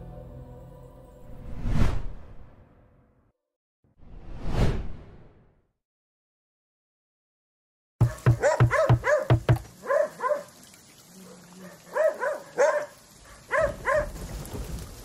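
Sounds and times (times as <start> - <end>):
dog barking: 8.0 - 10.6, 11.2 - 14.2
steady rain: 9.6 - 15.0.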